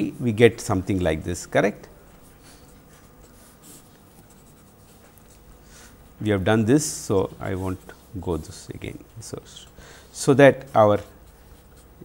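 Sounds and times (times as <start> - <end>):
pen scratching on paper: 2.1 - 6.2, 10.4 - 12.0.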